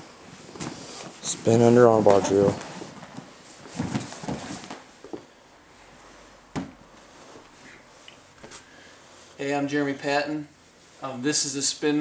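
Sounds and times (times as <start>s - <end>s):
cloth rustling and body bumping: 0.3s - 5.3s.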